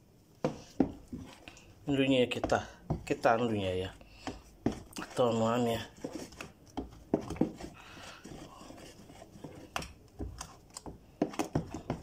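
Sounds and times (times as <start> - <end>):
utensil beating thick batter: 0.7 - 12.0.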